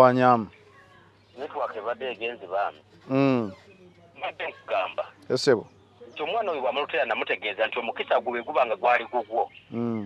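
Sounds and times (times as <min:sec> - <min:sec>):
person talking through phone speaker: 0:01.4 - 0:03.6, 0:04.2 - 0:05.1, 0:06.2 - 0:10.0.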